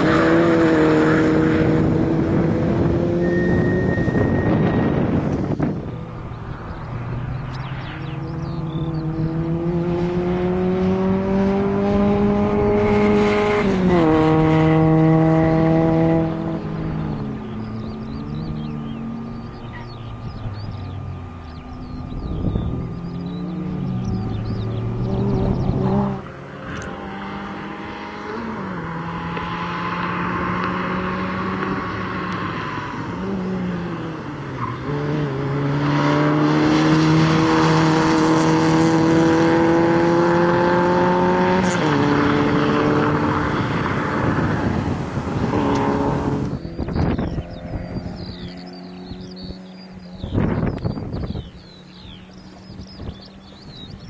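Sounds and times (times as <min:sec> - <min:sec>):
car engine revving through gears: 0:00.0 - 0:54.0.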